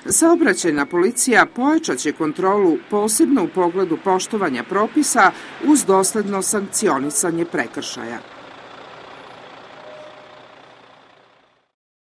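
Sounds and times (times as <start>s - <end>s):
road noise: 0.0s - 11.8s
truck diesel engine running: 0.0s - 11.8s.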